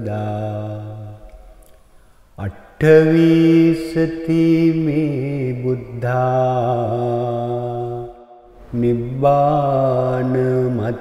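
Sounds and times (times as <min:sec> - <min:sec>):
man chanting: 0:00.0 - 0:01.5, 0:02.4 - 0:11.0.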